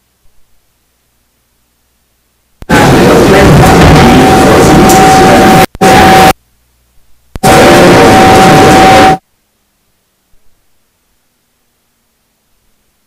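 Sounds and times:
distorted noise with high tone: 0.0s - 13.0s.

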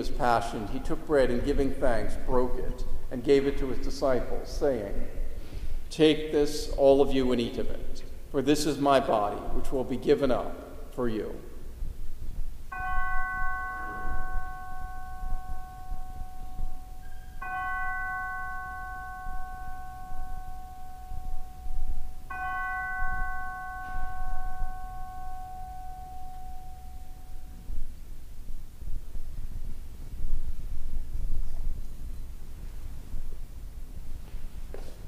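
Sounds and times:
bell ringing: 12.7s - 28.0s.

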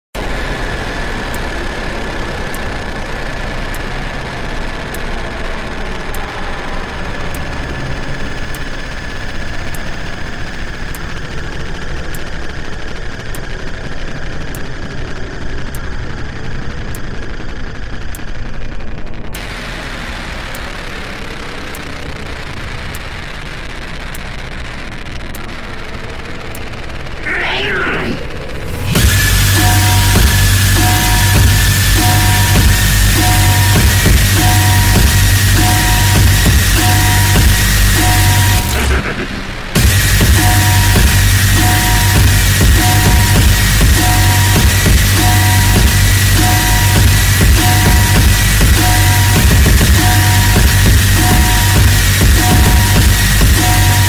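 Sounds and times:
low noise drone: 0.0s - 54.0s
light ticks: 24.0s - 25.6s.

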